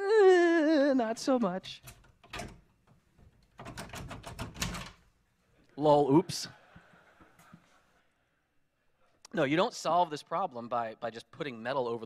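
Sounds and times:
metal tool clicking on door latch: 1.8s - 5.0s.

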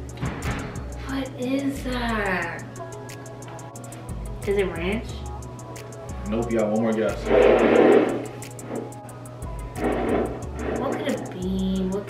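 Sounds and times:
background music with plucked guitar: 0.0s - 12.0s.

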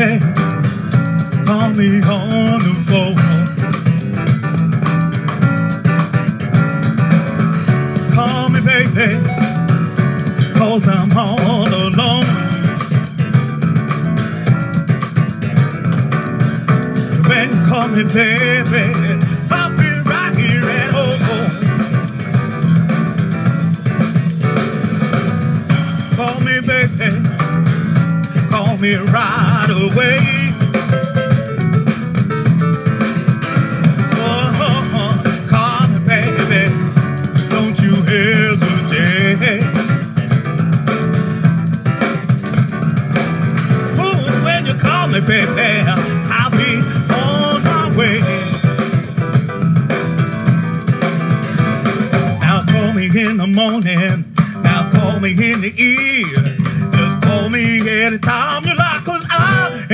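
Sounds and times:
drum and cymbal hits: 0.0s - 59.9s
electric bass guitar line: 0.0s - 59.9s
piano: 0.0s - 59.9s.

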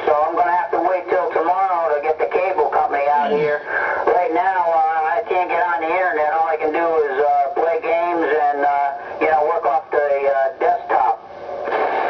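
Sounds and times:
man talking over radio speaker: 0.0s - 11.2s.

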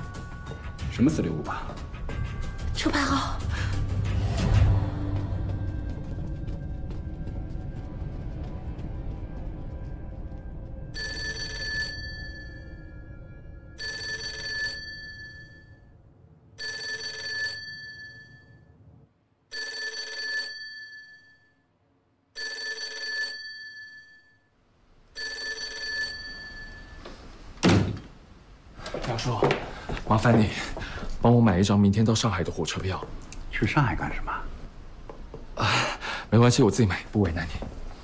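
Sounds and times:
telephone bells ringing: 11.0s - 12.8s, 13.8s - 15.9s, 16.6s - 18.7s, 19.5s - 21.6s, 22.4s - 24.5s, 25.2s - 27.1s.

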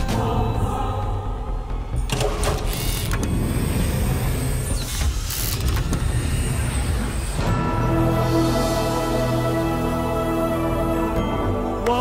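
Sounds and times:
mechanical whirring: 2.1s - 7.5s.

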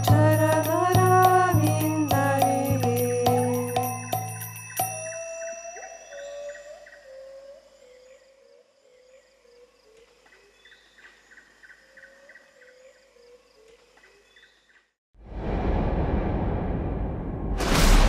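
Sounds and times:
rushing rumbling whoosh: 15.2s - 18.0s.

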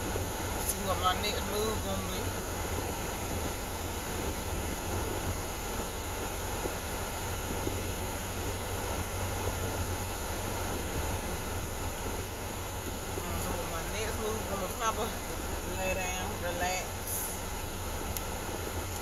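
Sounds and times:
car cabin rumble and hiss: 0.0s - 19.0s.

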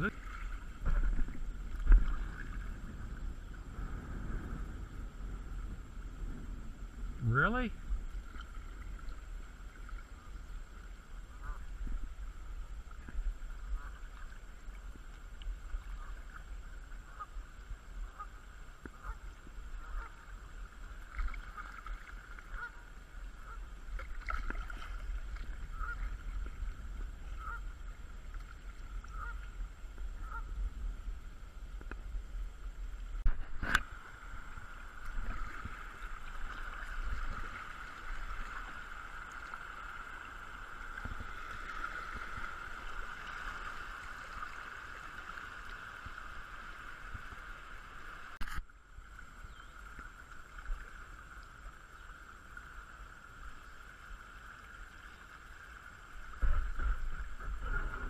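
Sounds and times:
wind rumble on microphone: 0.0s - 45.0s, 56.1s - 58.0s
water sloshing against a hull: 0.0s - 58.0s
geese honking: 22.5s - 23.7s, 25.7s - 26.1s, 27.3s - 27.7s, 29.1s - 29.5s, 30.2s - 30.5s.

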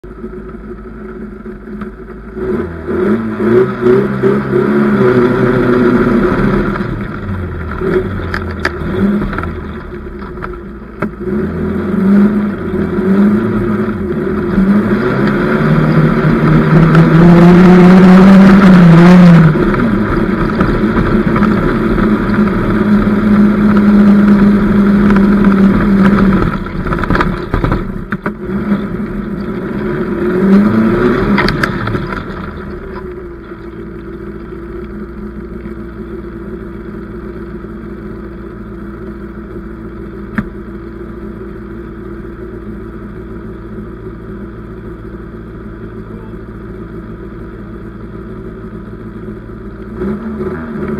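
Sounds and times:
car engine revving and idling: 0.0s - 50.9s.

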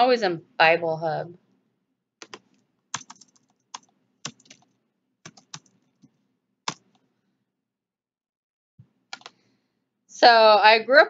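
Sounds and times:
keyboard typing clicks: 2.2s - 7.0s, 9.1s - 9.4s.

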